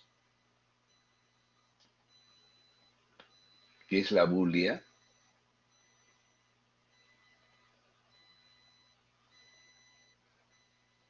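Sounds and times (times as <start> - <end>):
faint high-pitched tones: 0.0 - 11.0.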